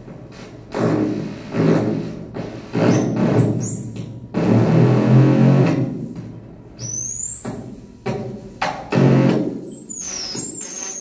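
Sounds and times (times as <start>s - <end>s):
high whistling tone sliding: 6.8s - 8.9s, 9.5s - 11.0s.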